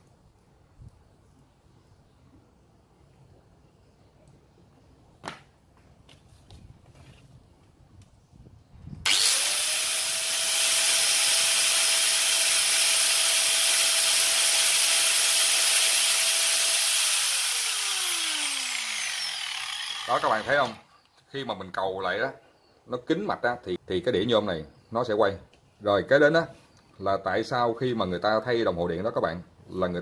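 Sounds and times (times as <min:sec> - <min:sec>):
power tool motor whining: 0:09.1 - 0:20.9.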